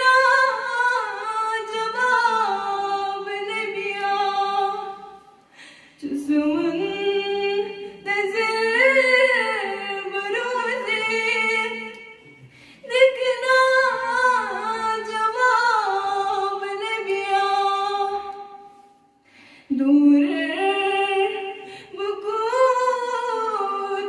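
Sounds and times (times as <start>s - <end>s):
woman singing unaccompanied: 0.0s - 5.1s, 6.0s - 12.0s, 12.8s - 18.3s, 19.7s - 24.0s.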